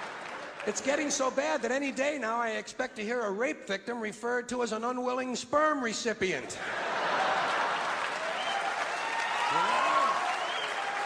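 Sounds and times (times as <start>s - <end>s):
audience applauding: 0.0s - 1.6s, 6.7s - 11.0s.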